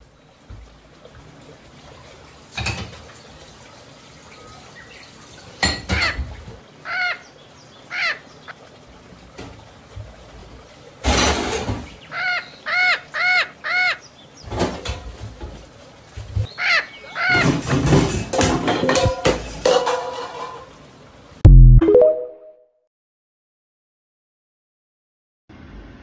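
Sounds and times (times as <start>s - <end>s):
parrot squawking: 6.8s - 7.2s, 7.9s - 8.2s, 12.1s - 14.0s, 16.5s - 17.6s.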